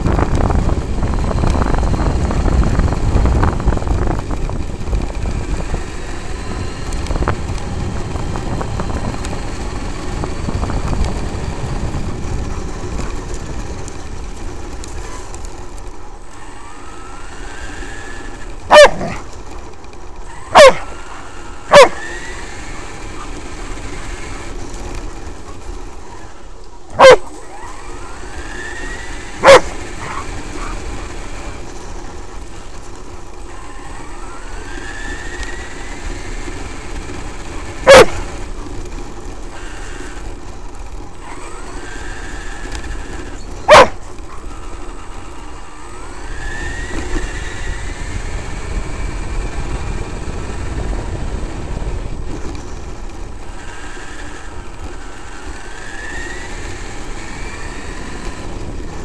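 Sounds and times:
electric motor whining: 0:00.0 - 0:59.0
tyres on gravel: 0:00.0 - 0:59.0
dog barking: 0:18.7 - 0:19.2, 0:20.5 - 0:20.9, 0:21.7 - 0:22.1, 0:26.9 - 0:27.4, 0:29.4 - 0:30.8, 0:37.8 - 0:38.3, 0:43.7 - 0:44.0.

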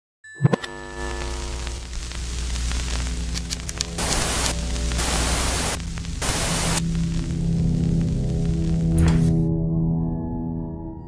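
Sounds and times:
television static hiss: 0:01.0 - 0:08.9
low droning music tone: 0:01.0 - 0:11.0.

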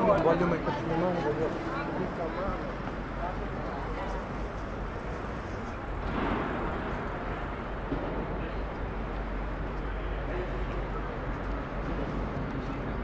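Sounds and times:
passers-by voices: 0:00.0 - 0:13.0
traffic rumble: 0:00.0 - 0:13.0.

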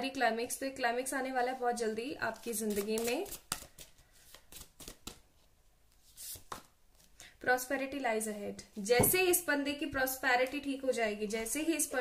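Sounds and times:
soft card rustles: 0:01.7 - 0:07.2.

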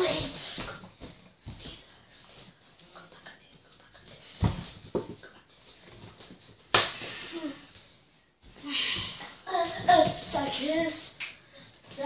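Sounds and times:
movement in a small room: 0:00.0 - 0:12.0.

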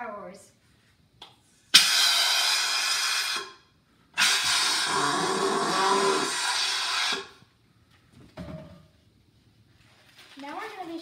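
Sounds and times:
hand balloon pump hissing: 0:01.7 - 0:03.6, 0:04.2 - 0:07.5.

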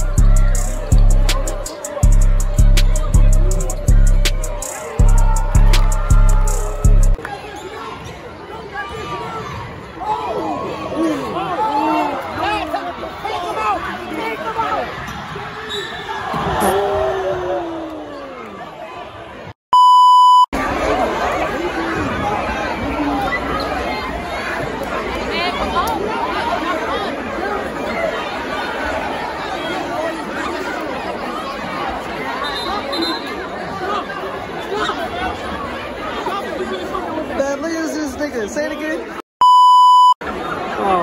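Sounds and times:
crowd chattering and shouting: 0:00.0 - 0:19.6, 0:20.2 - 0:41.0
electronic censor beep: 0:19.8 - 0:20.5, 0:39.4 - 0:40.2.

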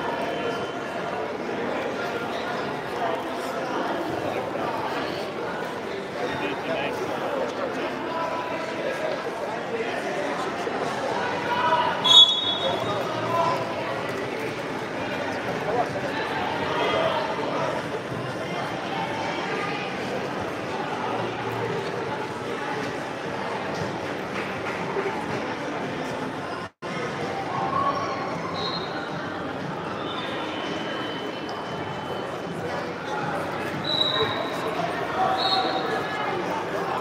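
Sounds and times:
spectators talking and calling out: 0:00.0 - 0:37.0.

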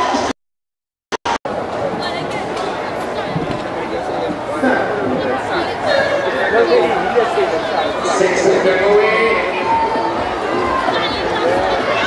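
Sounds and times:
people chattering and calling out: 0:01.5 - 0:12.0.

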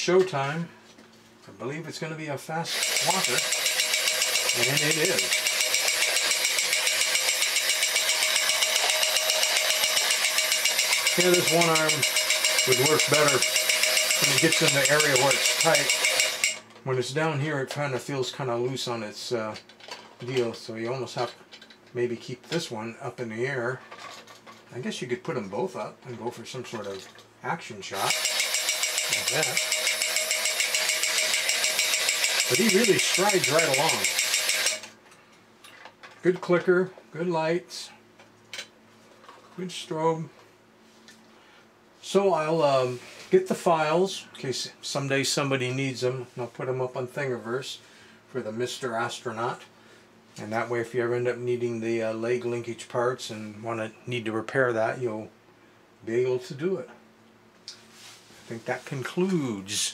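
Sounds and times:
rapid ticking clicker: 0:02.7 - 0:16.6, 0:28.0 - 0:34.9
toy robot motor whirring: 0:02.7 - 0:16.6, 0:28.0 - 0:34.9.

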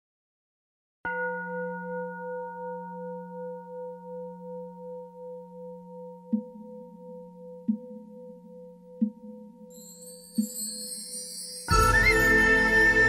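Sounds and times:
singing bowl ringing: 0:01.1 - 0:13.0.

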